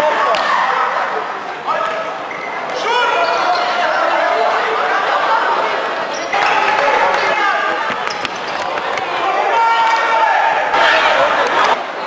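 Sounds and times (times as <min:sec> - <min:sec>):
players shouting: 0:00.0 - 0:11.8.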